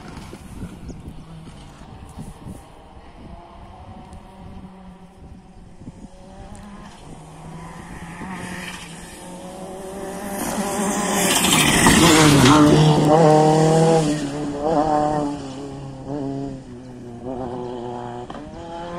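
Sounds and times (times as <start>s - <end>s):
rally car engine revving: 5.8s - 18.9s
gravel spraying from tyres: 6.6s - 13.0s.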